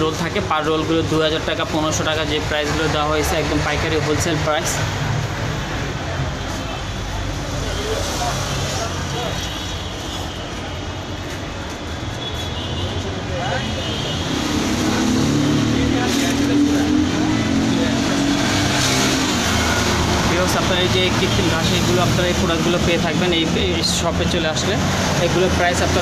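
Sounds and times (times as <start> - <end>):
road traffic rumble: 0.0 - 26.0
vehicle engine: 14.1 - 26.0.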